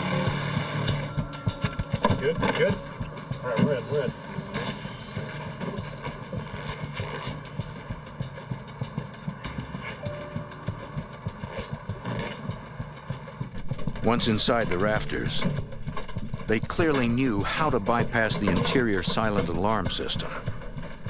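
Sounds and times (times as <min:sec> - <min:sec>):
saw cutting: 0:00.0 - 0:07.6
steady low drone: 0:00.0 - 0:21.0.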